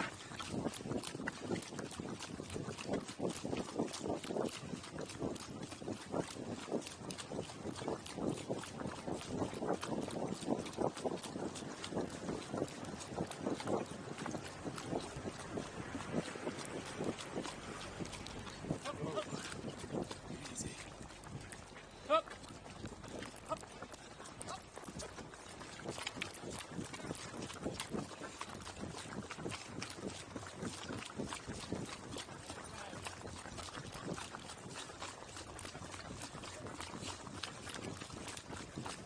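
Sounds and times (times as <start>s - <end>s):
hooves on a dirt road: 0.0s - 39.0s
running footsteps on dirt: 0.0s - 39.0s.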